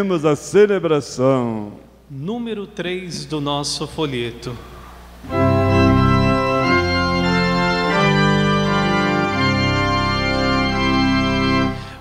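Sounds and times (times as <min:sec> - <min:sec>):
organ playing held chords: 0:04.0 - 0:12.0.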